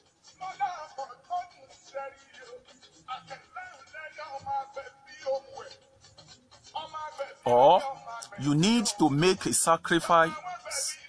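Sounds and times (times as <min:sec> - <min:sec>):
man chanting melodically: 0:07.5 - 0:11.0.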